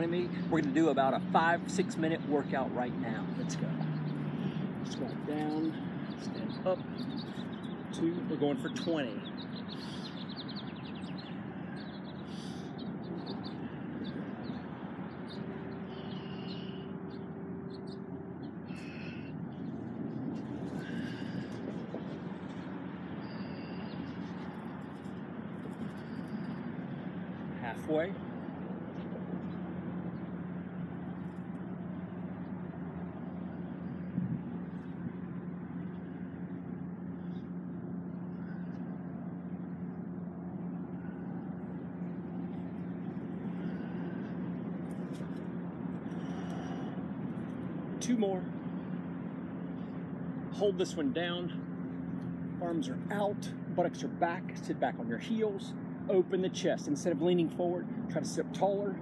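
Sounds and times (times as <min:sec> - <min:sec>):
outdoor background rumble: 0:00.0 - 0:59.0
low even hum: 0:02.3 - 0:56.3.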